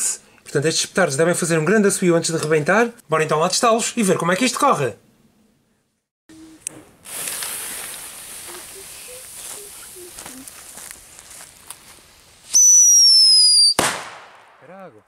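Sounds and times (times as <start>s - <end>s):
fuse hissing: 7.0s - 11.4s
firecracker whistle falling in pitch: 12.5s - 14.1s
firecracker bang: 13.7s - 15.0s.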